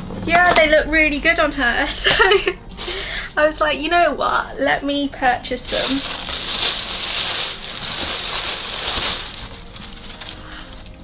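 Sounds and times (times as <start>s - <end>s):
paper packaging crinkling: 2.8s - 3.4s, 5.6s - 11.0s.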